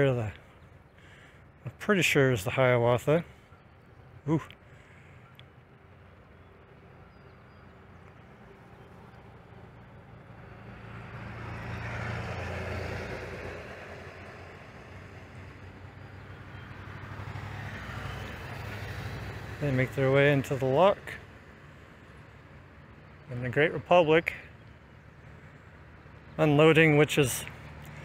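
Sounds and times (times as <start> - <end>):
boat engine humming: 0.0 - 28.0.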